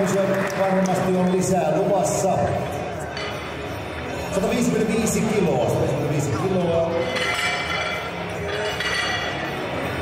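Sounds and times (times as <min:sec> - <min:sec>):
voices talking in a hall: 0:00.0 - 0:10.0.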